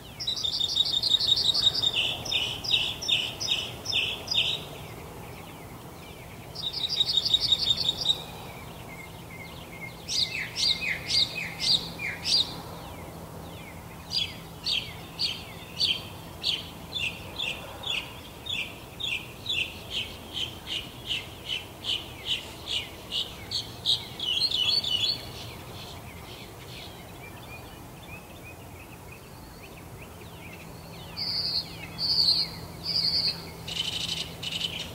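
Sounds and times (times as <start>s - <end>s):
songbirds singing: 0.0s - 34.9s.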